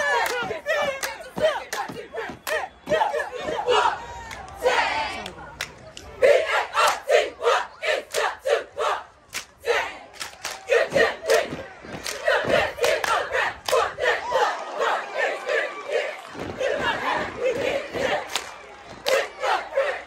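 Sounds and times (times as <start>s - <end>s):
cheerleaders shouting chant: 0.0s - 5.5s, 6.1s - 20.0s
crowd noise: 0.0s - 20.0s.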